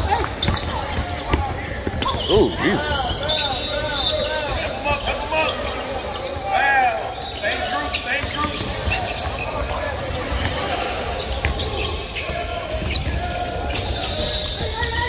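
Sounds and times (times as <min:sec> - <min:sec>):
sneakers squeaking on court: 0:00.0 - 0:15.0.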